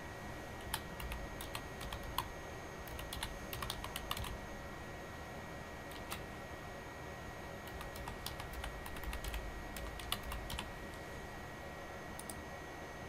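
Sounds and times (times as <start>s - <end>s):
typing on computer keyboard: 0.6s - 2.3s, 2.9s - 4.4s, 5.9s - 6.2s, 7.7s - 10.7s.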